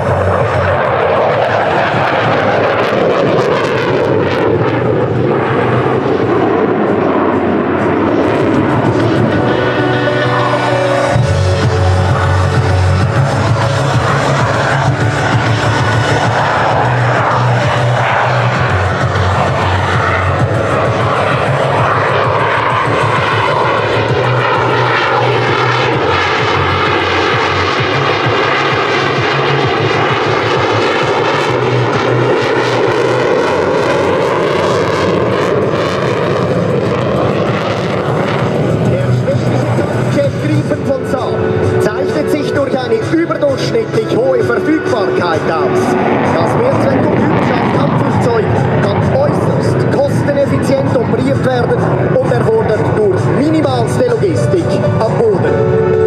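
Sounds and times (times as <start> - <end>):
jet fighter roar passing: 0.0 - 56.0.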